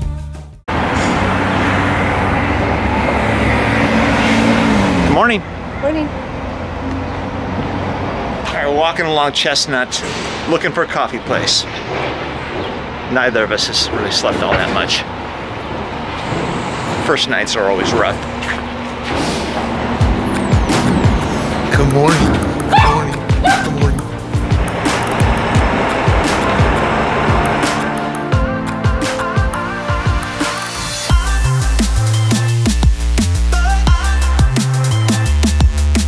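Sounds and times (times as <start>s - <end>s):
car passing close: 0.7s - 28.4s
engine hum: 0.7s - 36.0s
road noise: 0.7s - 36.0s
street noise: 0.7s - 36.0s.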